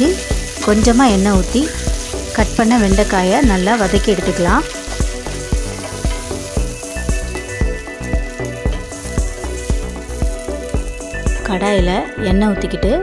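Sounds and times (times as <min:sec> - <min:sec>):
vegetables sizzling in oil: 0:00.0 - 0:11.7.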